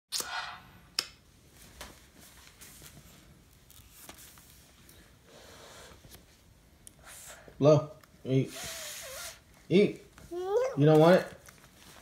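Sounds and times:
phone rustling in hand: 1.5 - 5.0.

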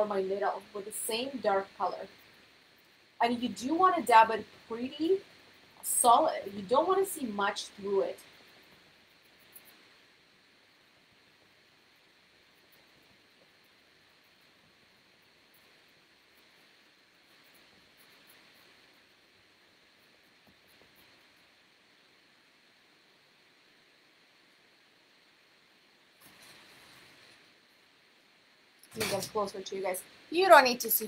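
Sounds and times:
faint hiss: 0.0 - 31.0.

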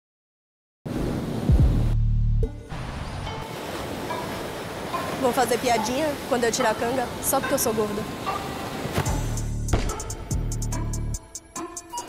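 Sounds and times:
ocean surf: 0.9 - 1.6, 2.7 - 9.4
deep bass drone: 1.5 - 3.3.

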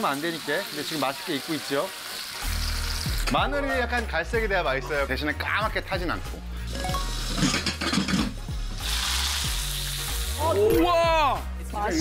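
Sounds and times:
garlic and pork sizzling in pot: 0.0 - 4.2, 6.5 - 10.6.

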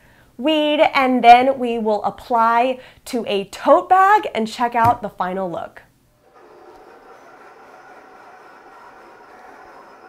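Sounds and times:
vinyl cutter mechanical whir: 6.3 - 10.0.

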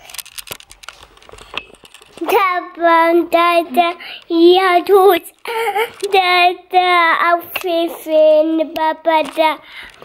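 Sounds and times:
phone handling clicks and rustles: 0.0 - 2.4.

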